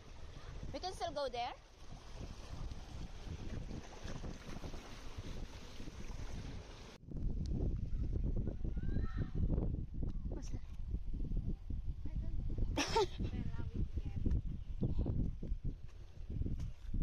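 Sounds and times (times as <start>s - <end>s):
seawater sloshing through rocks: 0.0s - 7.0s
wind buffeting microphone: 0.0s - 17.0s.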